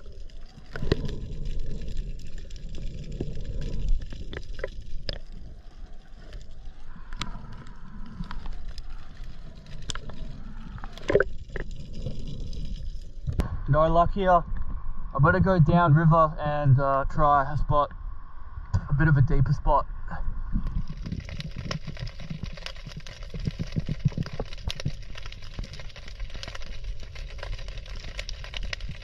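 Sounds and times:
water sloshing and gurgling: 0.0 - 13.7, 20.0 - 29.0.

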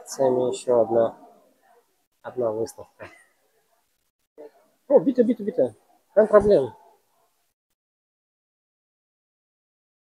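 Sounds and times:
man speaking: 0.0 - 1.3, 2.2 - 3.2, 4.4 - 7.0.

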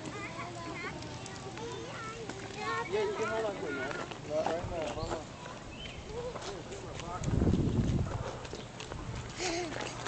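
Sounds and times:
faint voices: 0.0 - 7.4.

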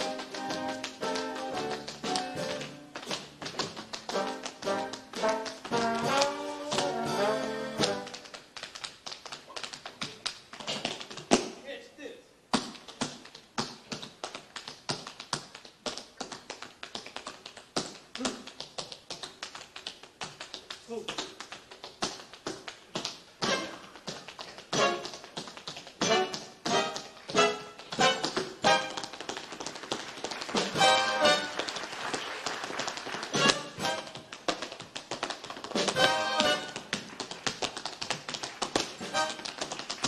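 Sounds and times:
tap shoes on stage floor: 0.0 - 11.6, 12.5 - 40.0
brass band: 4.1 - 8.1, 24.8 - 25.1, 26.0 - 29.1, 30.6 - 31.7, 33.3 - 34.2, 35.8 - 36.8, 39.0 - 39.5.

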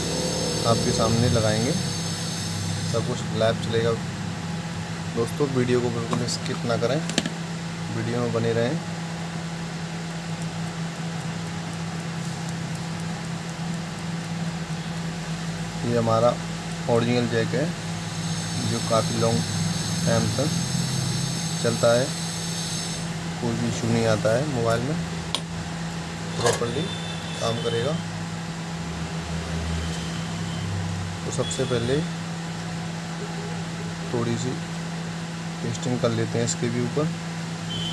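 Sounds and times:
fan-like hiss: 0.0 - 37.9
low machine hum: 0.0 - 37.9.

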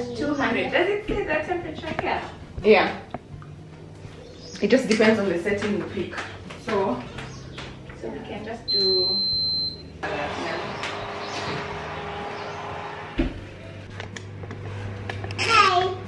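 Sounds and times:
oven high-pitched beep: 8.7 - 10.0.

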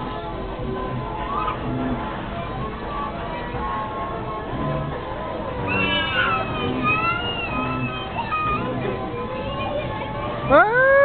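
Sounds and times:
carousel music: 0.0 - 11.0
child squealing: 5.7 - 8.7.

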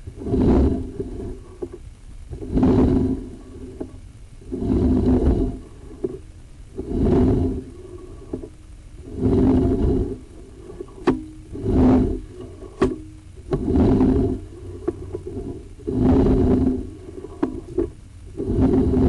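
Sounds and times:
cable scraping in drain: 0.0 - 19.0.

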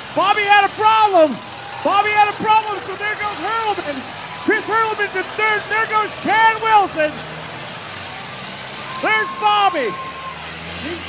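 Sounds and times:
car engine running: 0.0 - 11.0
steady noisy background: 0.0 - 11.0.

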